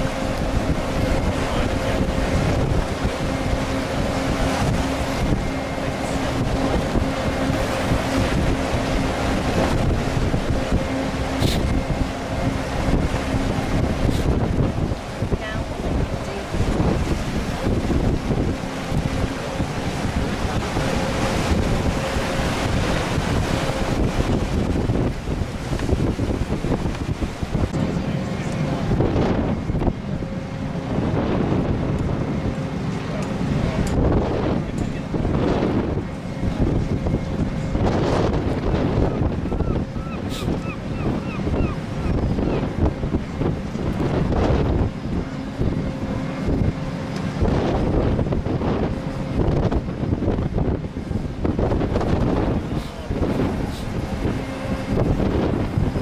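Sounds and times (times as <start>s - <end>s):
machinery humming: 0.0s - 56.0s
wind buffeting microphone: 0.0s - 56.0s.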